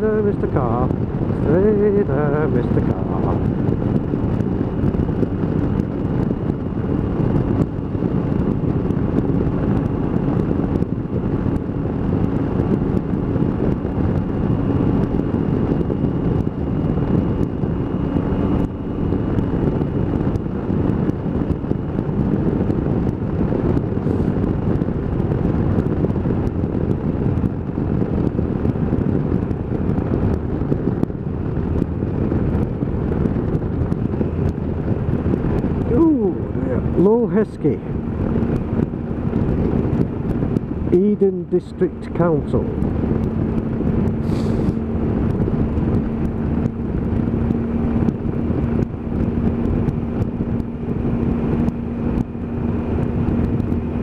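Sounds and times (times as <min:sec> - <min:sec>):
motorcycle engine running: 0:00.0 - 0:54.0
wind rushing over microphone: 0:00.0 - 0:54.0.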